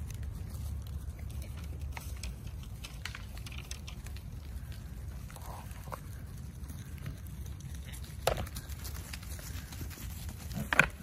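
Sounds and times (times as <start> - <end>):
light clicks and crackles: 0.0 - 11.0.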